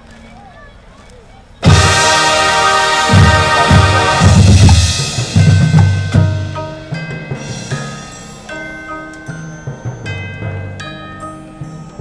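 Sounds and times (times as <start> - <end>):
marching band low drums pounding: 1.6 - 8.5
held band chord: 1.6 - 12.0.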